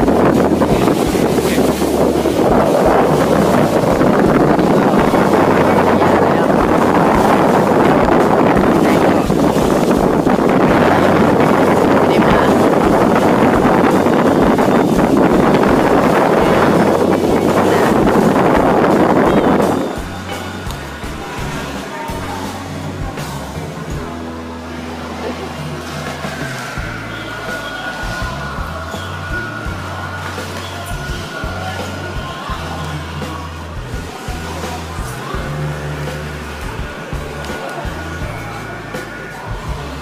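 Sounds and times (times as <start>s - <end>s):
wind buffeting microphone: 0.0s - 24.7s
boat and water rushing: 0.0s - 40.0s
music: 0.0s - 40.0s.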